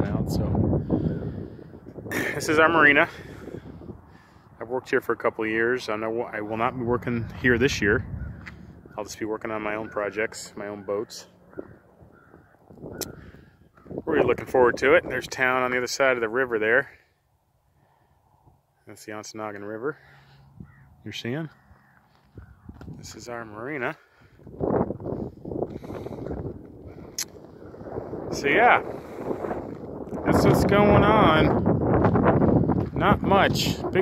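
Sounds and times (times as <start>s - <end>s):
wind buffeting microphone: 0.0s - 15.8s, 20.5s - 34.0s
faint bird call: 9.7s - 14.0s.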